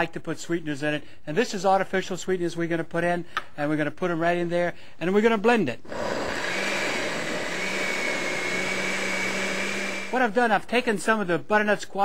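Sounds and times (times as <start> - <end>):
blender motor whirring: 5.9 - 10.2.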